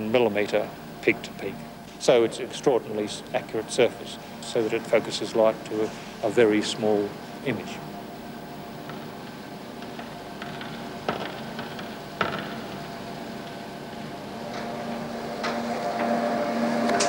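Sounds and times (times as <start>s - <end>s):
steady mechanical hum: 0.0s - 17.0s.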